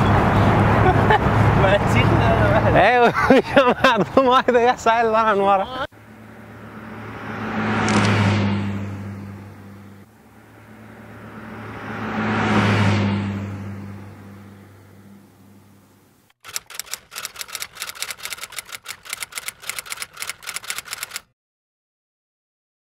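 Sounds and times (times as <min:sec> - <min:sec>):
low hum: 0:06.0 - 0:16.3
typewriter key clicks: 0:16.4 - 0:21.3.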